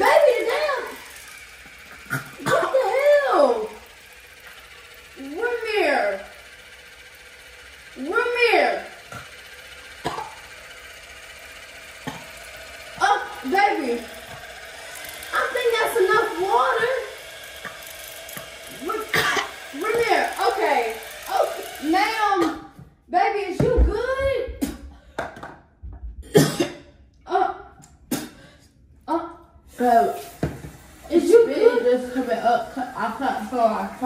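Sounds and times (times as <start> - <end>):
water flosser buzzing: 0.0 - 25.5, 29.4 - 34.0.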